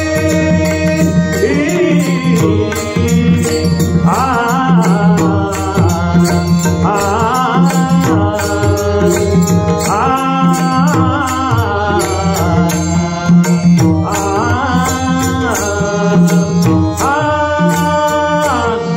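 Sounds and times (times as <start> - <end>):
repeating percussion beat: 0.0 - 18.8
harmonium: 0.0 - 18.9
man singing devotional song: 0.0 - 18.9.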